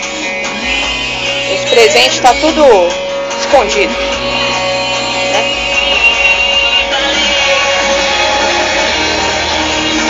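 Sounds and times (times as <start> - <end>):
guitar music from stereo: 0.0 - 10.0.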